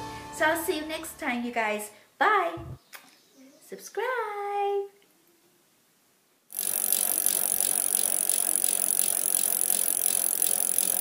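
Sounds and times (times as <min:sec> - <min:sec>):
mechanical rattling whir with clicks: 0:06.5 - 0:11.0.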